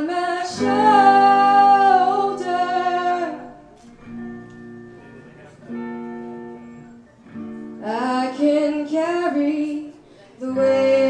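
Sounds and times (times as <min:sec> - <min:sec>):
woman singing: 0:00.0 - 0:03.7, 0:07.8 - 0:11.0.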